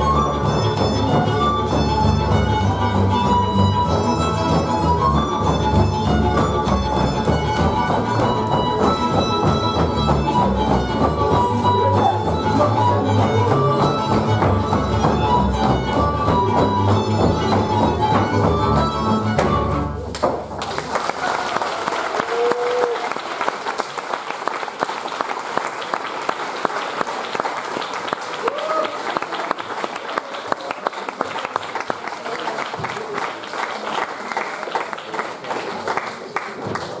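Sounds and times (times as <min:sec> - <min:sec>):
folk dance music: 0:00.0 - 0:37.0
audience applauding: 0:20.1 - 0:37.0.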